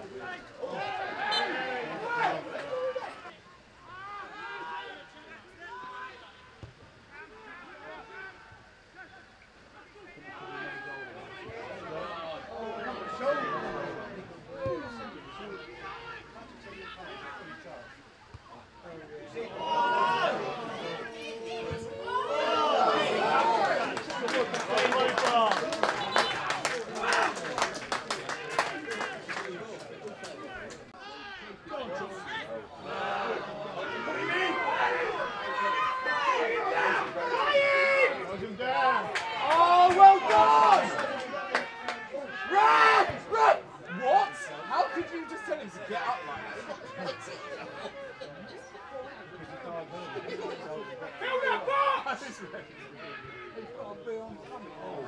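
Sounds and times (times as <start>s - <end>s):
distant players shouting: 0.6s - 18.7s, 19.3s - 29.3s, 31.0s - 47.2s
men shouting: 19.5s - 25.1s.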